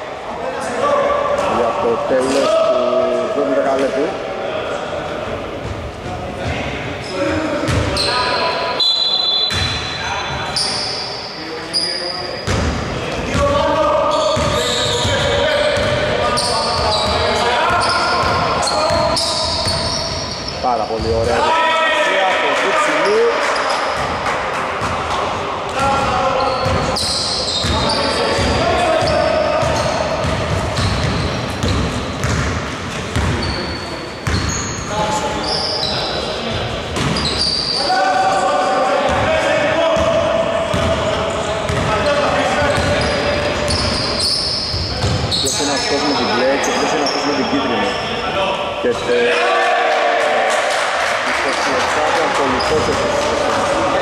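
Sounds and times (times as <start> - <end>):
players calling out: 4.8 - 32.5
basketball bouncing on hardwood floor: 29.6 - 33.4.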